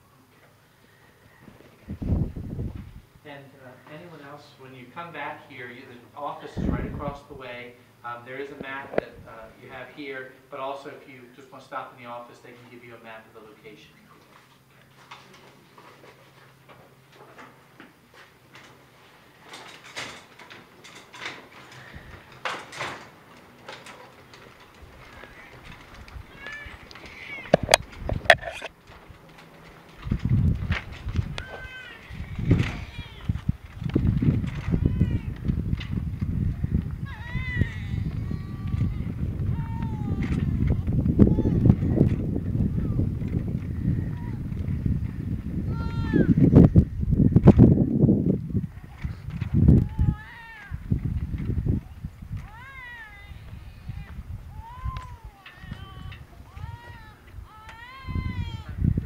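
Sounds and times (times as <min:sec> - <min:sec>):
cart wheels squeaking: 0:13.7 - 0:46.3
bier wheels squealing: 0:25.2 - 0:28.7.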